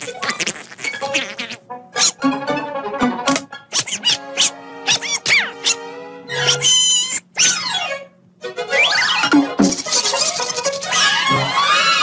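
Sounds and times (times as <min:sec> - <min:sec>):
cartoon duck squawking: 0:00.0 - 0:02.2, 0:03.7 - 0:08.0, 0:08.6 - 0:11.3
orchestral music: 0:01.7 - 0:03.6, 0:04.2 - 0:06.4.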